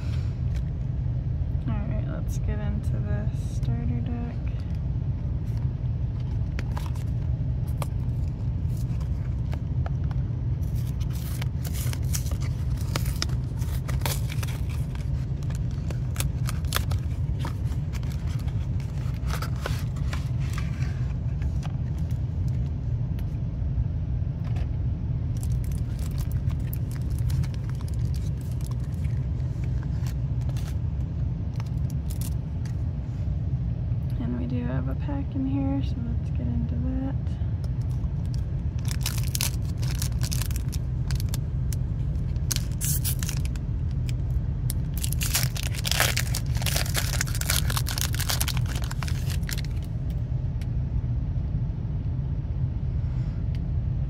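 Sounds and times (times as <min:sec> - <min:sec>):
steady low rumble: 0:00.0 - 0:54.0.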